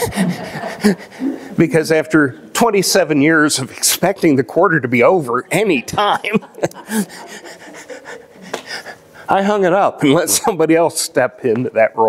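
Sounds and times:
man laughing breathily: 0:00.0 - 0:01.6, 0:06.3 - 0:09.3.

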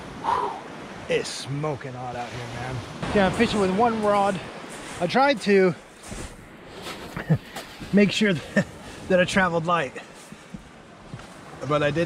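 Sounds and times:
wind and surf hiss: 0:00.0 - 0:12.0
man speaking: 0:01.1 - 0:05.8, 0:07.9 - 0:10.0, 0:11.6 - 0:12.0.

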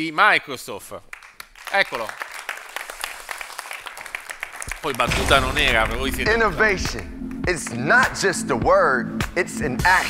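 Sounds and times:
audience applauding: 0:01.1 - 0:05.1.

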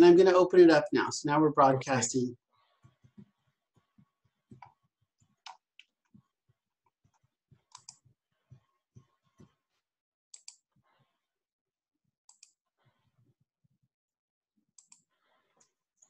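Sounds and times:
computer clicking: 0:07.7 - 0:08.0.

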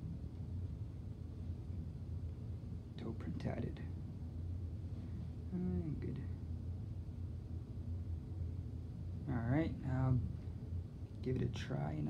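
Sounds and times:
low background hum and rumble: 0:00.0 - 0:12.0.

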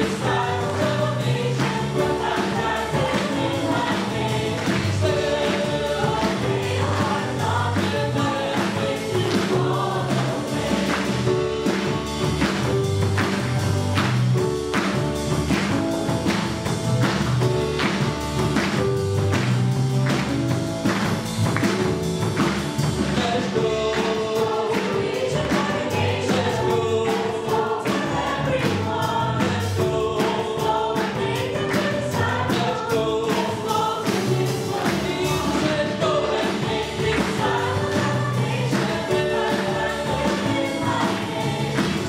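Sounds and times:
voices singing together: 0:00.0 - 0:12.7, 0:23.0 - 0:42.0
drums: 0:00.0 - 0:42.0.

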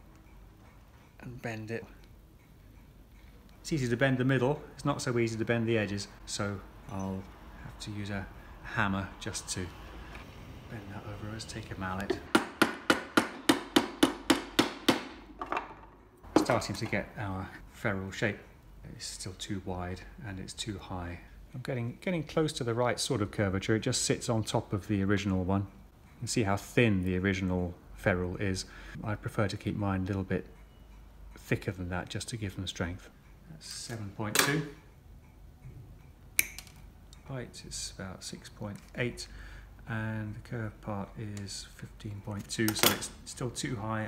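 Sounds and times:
tool handling noise: 0:11.4 - 0:17.1, 0:33.8 - 0:34.8, 0:42.3 - 0:43.2
wooden mallet tapping metal: 0:12.0 - 0:16.9
metal tool click with ring: 0:36.0 - 0:37.3.

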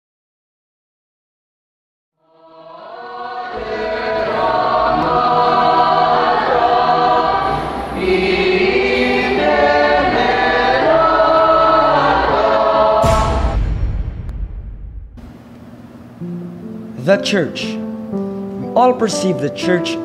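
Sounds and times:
choir singing held chords: 0:02.2 - 0:14.8.

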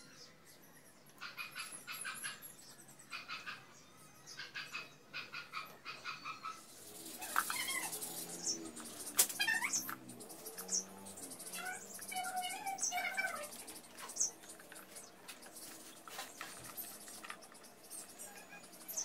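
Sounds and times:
wavering animal cries: 0:04.4 - 0:10.0, 0:10.6 - 0:14.4
high-pitched animal squeaks: 0:07.2 - 0:08.6, 0:09.2 - 0:10.0, 0:11.5 - 0:14.4.

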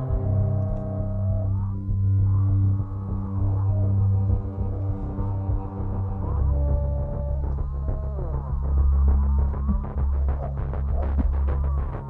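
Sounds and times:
low throbbing suspense drone: 0:00.0 - 0:12.0.

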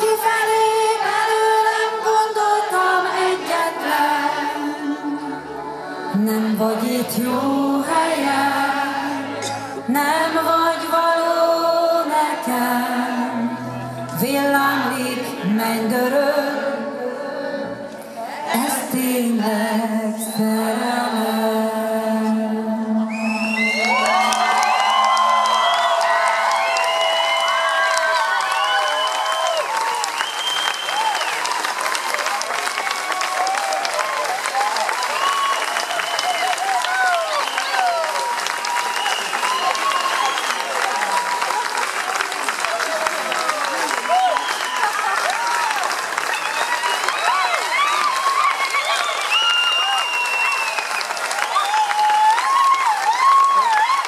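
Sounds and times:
audience applauding and cheering: 0:23.0 - 0:54.0
audience shouts and whoops: 0:23.2 - 0:54.0.

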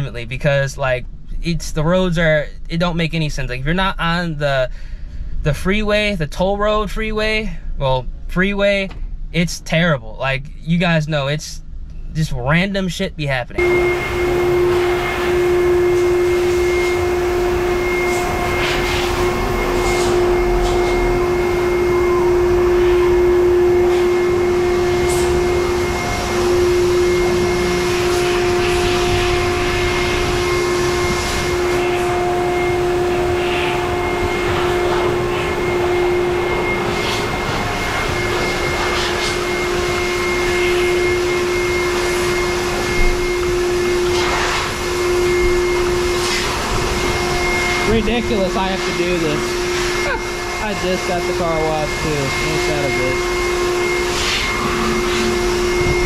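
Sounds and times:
steady machine hum: 0:00.0 - 0:56.0.

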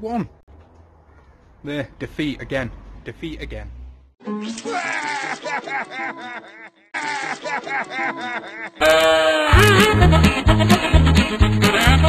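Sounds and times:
cartoon voice crying and sobbing: 0:04.5 - 0:10.0
music: 0:09.5 - 0:12.0.

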